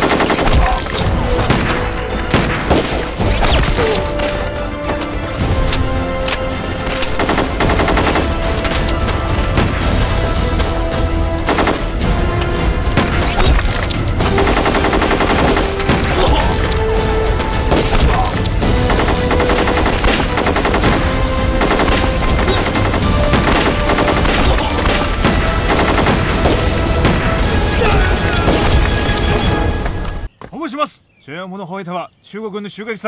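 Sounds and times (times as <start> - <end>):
machine-gun and rifle fire: 0.0 - 0.8, 7.1 - 8.7, 11.4 - 11.9, 14.2 - 16.2, 18.8 - 27.3.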